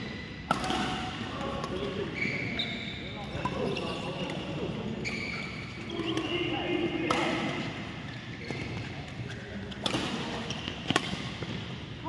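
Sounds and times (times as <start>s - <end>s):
racket striking shuttlecock: 0.5s - 1.1s, 9.8s - 11.6s
shoes squeaking on floor: 2.0s - 6.8s, 8.0s - 9.8s.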